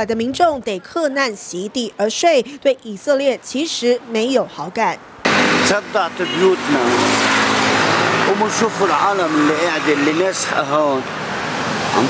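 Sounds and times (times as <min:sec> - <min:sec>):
road traffic passing: 0:00.0 - 0:12.0
man's voice: 0:05.6 - 0:07.2, 0:08.2 - 0:11.1.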